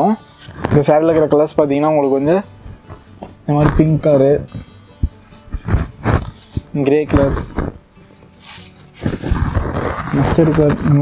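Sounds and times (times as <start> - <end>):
fabric rustling: 0.4 - 1.4, 2.7 - 11.0.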